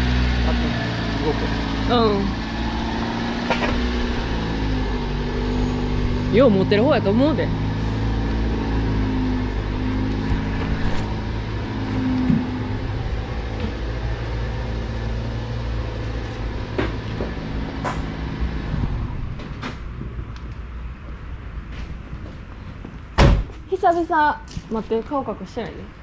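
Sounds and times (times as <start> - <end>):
engine idling hum: 0.0 - 23.2.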